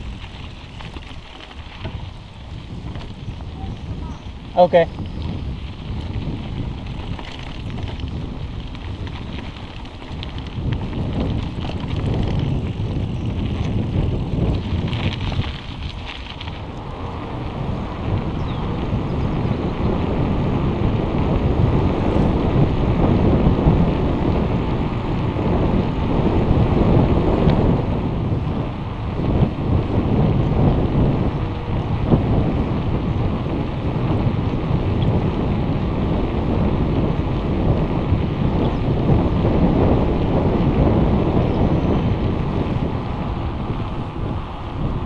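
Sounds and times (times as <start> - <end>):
bike tyres rolling: 0.0 - 45.0
wind buffeting microphone: 0.0 - 45.0.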